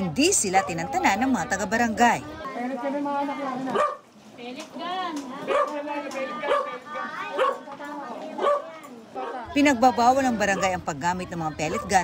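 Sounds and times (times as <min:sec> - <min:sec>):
people's voices: 0:00.0 - 0:12.0
dog barking and yipping: 0:03.7 - 0:04.0, 0:05.5 - 0:05.8, 0:06.4 - 0:07.6, 0:08.4 - 0:09.4, 0:11.6 - 0:12.0.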